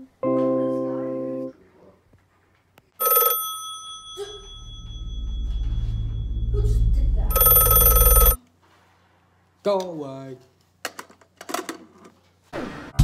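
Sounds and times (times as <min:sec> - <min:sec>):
telephone bell ringing: 0:03.0 - 0:06.6, 0:07.3 - 0:08.4.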